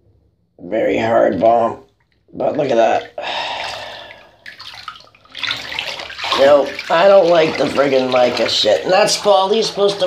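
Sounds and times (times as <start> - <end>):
small water splashes: 2.0 - 10.0
hand swishing bath water: 2.4 - 10.0.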